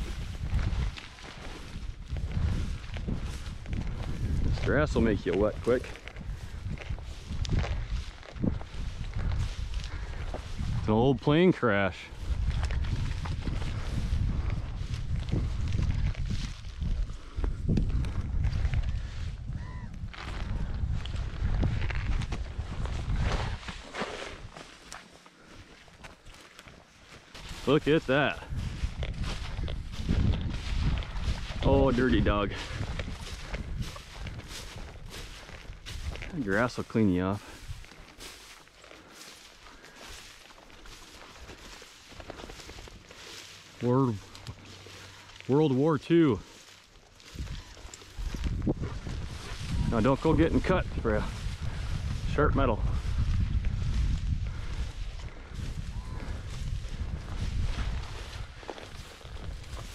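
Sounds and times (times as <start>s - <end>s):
low microphone rumble: 0.0s - 11.0s, 12.2s - 23.6s, 47.3s - 59.9s
grass swishing and brushing: 22.8s - 25.2s, 26.3s - 51.6s, 56.6s - 59.9s.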